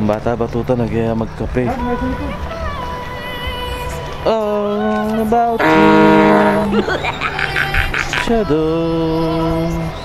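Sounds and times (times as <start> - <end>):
backing music: 3.9 - 7.6
singer holding long note: 4.8 - 7.0.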